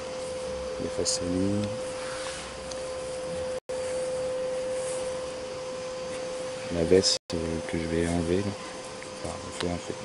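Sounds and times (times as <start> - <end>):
steady single-pitched hum: 0.0 - 10.0.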